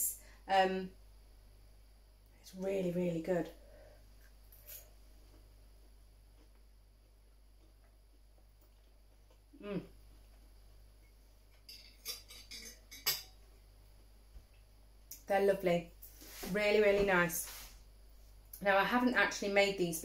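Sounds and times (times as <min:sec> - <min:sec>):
fork scraping a plate: 0:11.7 - 0:13.2.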